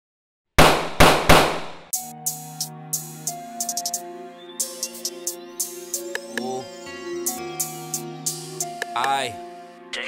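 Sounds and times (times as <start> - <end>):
gunshot sound effects: 0.6 - 1.9
hip-hop beat: 1.9 - 10.0.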